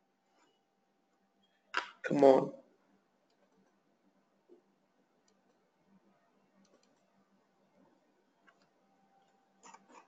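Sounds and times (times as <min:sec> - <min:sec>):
speech: 0:02.0 - 0:02.6.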